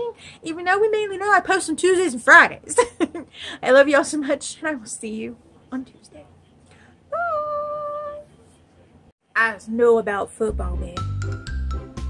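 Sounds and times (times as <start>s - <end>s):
woman calling sing-song: 7.1s - 8.3s.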